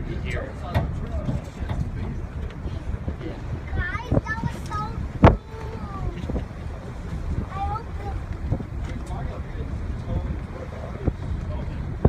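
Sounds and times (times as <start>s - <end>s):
low rumble on boat deck: 0.0s - 12.0s.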